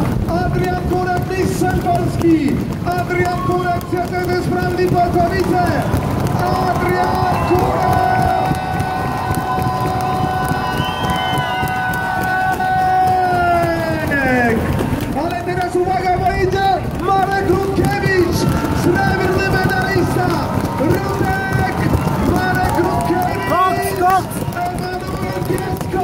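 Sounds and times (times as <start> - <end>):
crowd cheering: 0.0 - 26.0
announcer shouting over loudspeaker: 0.4 - 9.4, 15.2 - 26.0.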